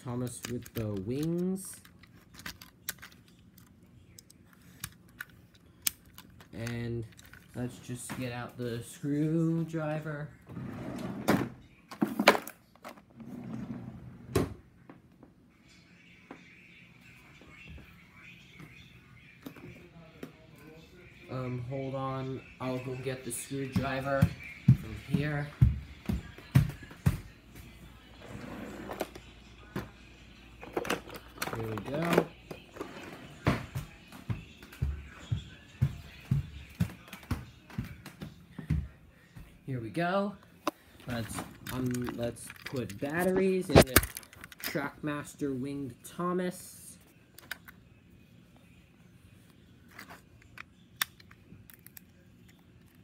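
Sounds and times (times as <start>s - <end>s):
footsteps walking: 22.6s - 28.0s, 31.6s - 39.6s.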